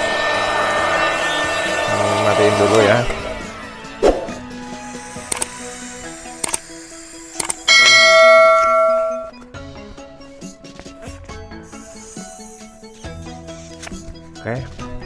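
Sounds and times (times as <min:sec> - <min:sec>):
background music: 0:00.0 - 0:15.0
click sound effects: 0:05.3 - 0:05.5, 0:06.4 - 0:06.6, 0:07.4 - 0:07.7
loud bell ringing: 0:07.7 - 0:09.4.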